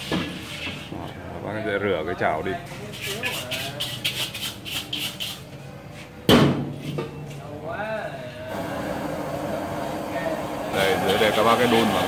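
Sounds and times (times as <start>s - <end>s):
scrubbing a wok: 2.9s - 5.5s
gas burner rushing: 8.5s - 12.0s.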